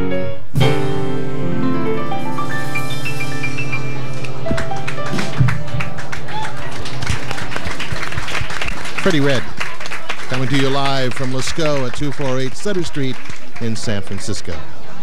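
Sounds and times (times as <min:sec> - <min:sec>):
jazz piano: 0:00.0 - 0:08.7
audience applause: 0:04.0 - 0:15.0
man speaking: 0:09.0 - 0:09.5, 0:10.3 - 0:14.6.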